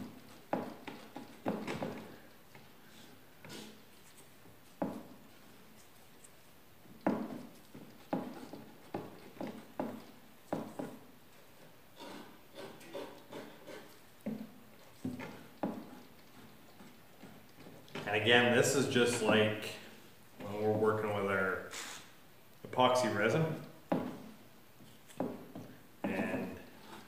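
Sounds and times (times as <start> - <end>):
putty knife scraping a board: 12.0 - 14.0.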